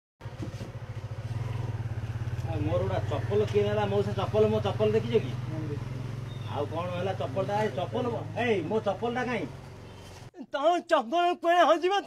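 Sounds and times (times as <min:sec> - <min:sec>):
engine idling: 0:00.2 - 0:10.3.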